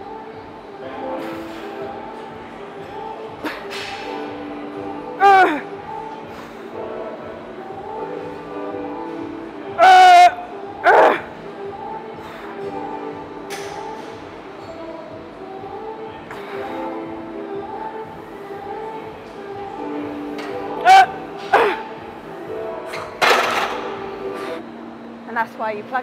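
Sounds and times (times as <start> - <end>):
background music: 0.0 - 26.0
woman grunting with strain: 5.2 - 5.7.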